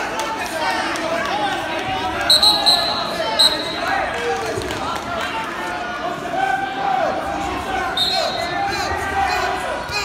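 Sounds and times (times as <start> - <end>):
spectator chatter: 0.0 - 10.0
referee's whistle blasts: 2.3 - 3.9, 7.9 - 8.6.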